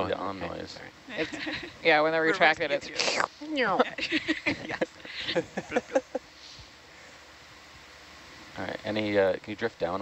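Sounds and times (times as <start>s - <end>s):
faint background hiss: 0.0s - 10.0s
people laughing: 1.1s - 1.8s, 3.8s - 6.2s.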